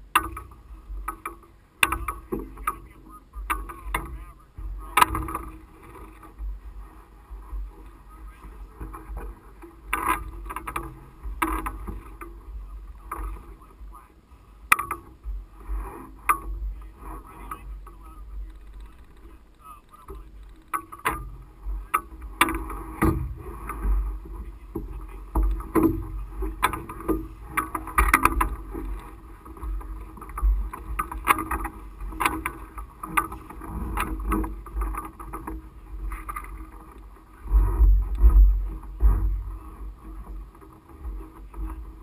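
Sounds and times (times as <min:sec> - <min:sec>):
knocks clicks and rattles: 0:00.0 - 0:06.6, 0:07.3 - 0:13.6, 0:14.6 - 0:42.0
wind rumble on microphone: 0:00.0 - 0:42.0.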